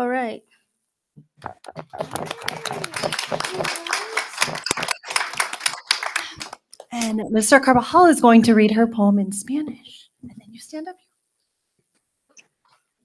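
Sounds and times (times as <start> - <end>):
audience applauding: 1.4 - 7.1.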